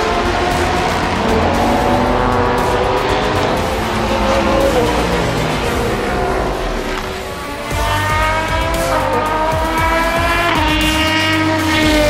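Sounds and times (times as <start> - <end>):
background music: 0.0 - 12.0
race car engine passing: 0.0 - 12.0.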